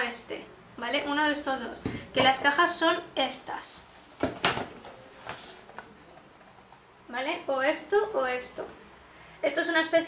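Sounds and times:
cardboard boxes knocking and scraping: 4.2s - 5.7s.

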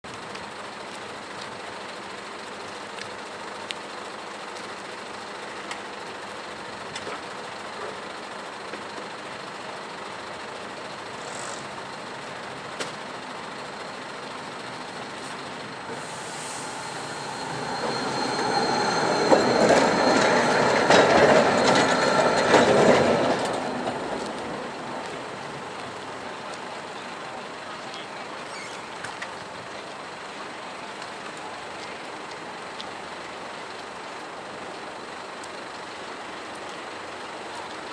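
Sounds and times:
tram rolling past: 6.2s - 35.2s
high wheel squeal: 15.2s - 24.8s, 28.4s - 29.0s.

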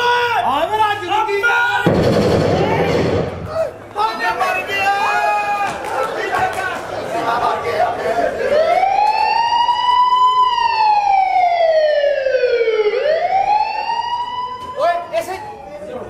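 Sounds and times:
voices: 2.5s - 11.5s
siren wail: 8.5s - 16.0s.

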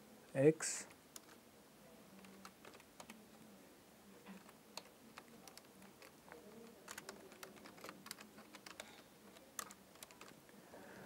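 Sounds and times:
faint computer keyboard typing: 0.8s - 1.4s, 2.1s - 3.4s, 4.3s - 10.4s.

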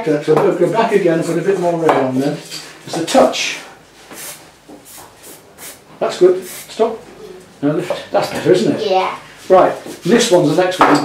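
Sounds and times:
aerosol spray can hissing: 4.1s - 5.8s, 6.4s - 6.7s.

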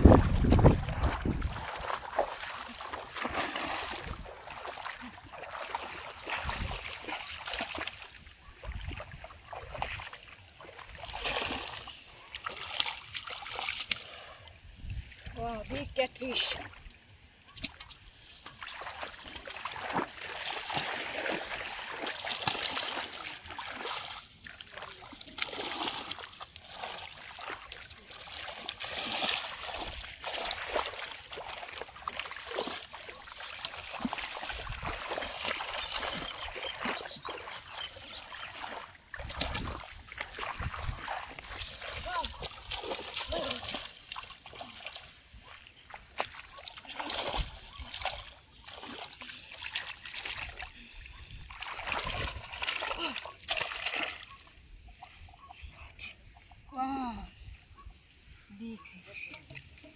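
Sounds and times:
hands splashing in shallow water: 0.0s - 14.4s, 16.6s - 54.4s.

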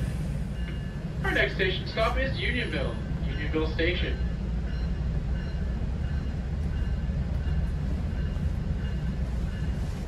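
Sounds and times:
train coach rumbling on track: 0.0s - 10.0s.

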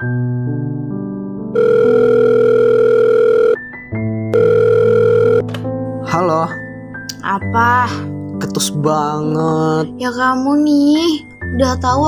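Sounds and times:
soft background music: 0.0s - 12.0s
telephone ringing: 1.6s - 3.7s, 4.3s - 5.5s.

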